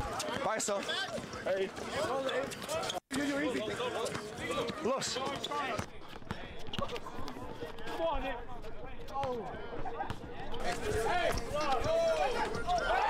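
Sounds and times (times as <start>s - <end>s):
players and onlookers shouting: 10.6s - 13.0s.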